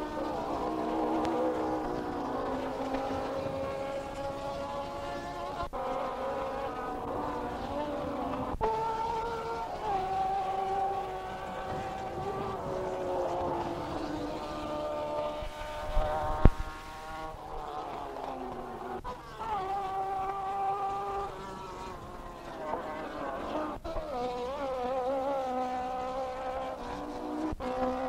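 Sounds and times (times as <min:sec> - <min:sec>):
racing car engines at high revs: 0:00.0 - 0:28.0.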